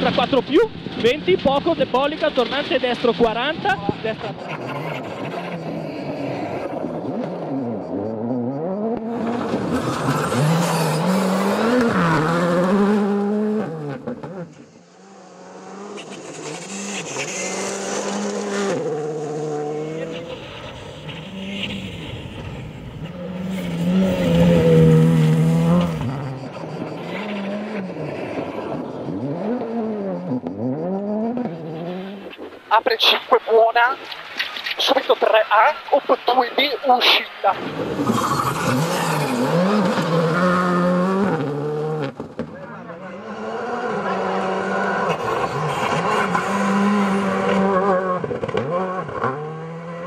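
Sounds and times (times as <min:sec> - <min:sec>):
rally car engines revving: 0:00.0 - 0:50.0.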